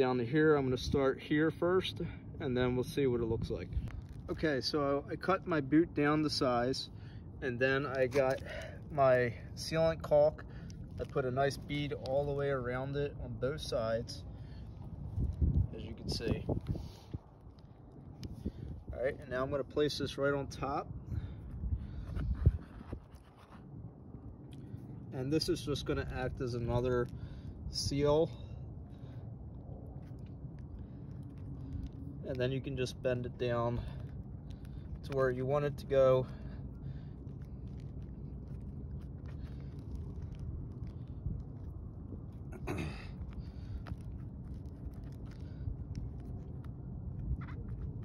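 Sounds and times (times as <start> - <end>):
low rumble: 2.0 - 48.0
rubber rubbing and scraping: 22.0 - 23.8.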